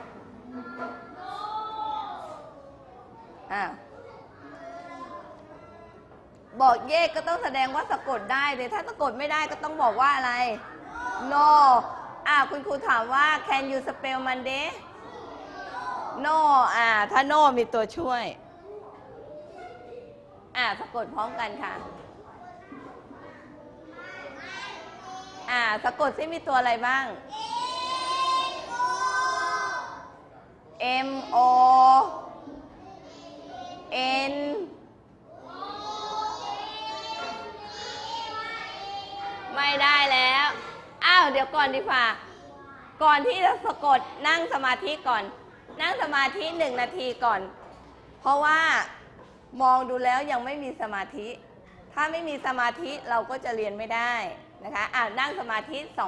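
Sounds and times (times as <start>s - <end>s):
children spelling aloud in unison: 0.0s - 51.0s
children chanting in unison: 27.3s - 30.0s, 35.3s - 39.4s.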